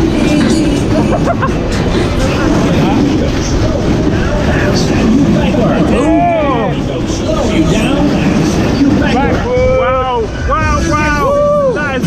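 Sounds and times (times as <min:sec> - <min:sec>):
riders whooping: 0:11.0 - 0:11.9.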